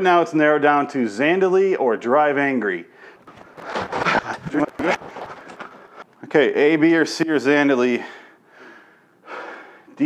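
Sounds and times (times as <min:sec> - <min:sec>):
man breathing hard: 0:08.0 - 0:10.0.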